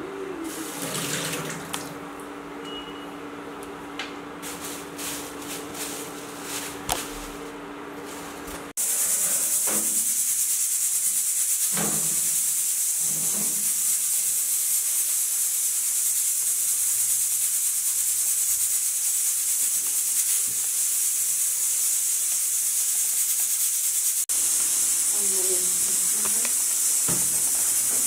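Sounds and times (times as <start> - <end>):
high-pitched hiss: 8.8 - 28.0.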